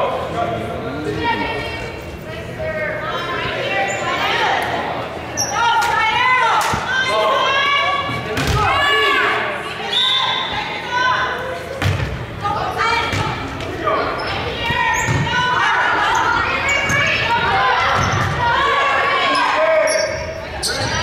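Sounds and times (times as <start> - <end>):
girls calling out and cheering: 5.4 - 11.6, 14.3 - 19.9
volleyball thumps: 8.3 - 8.8, 11.8 - 12.2.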